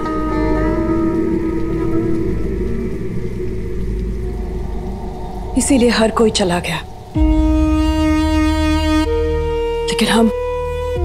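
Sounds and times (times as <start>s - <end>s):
low rumbling drone score: 0.0s - 11.0s.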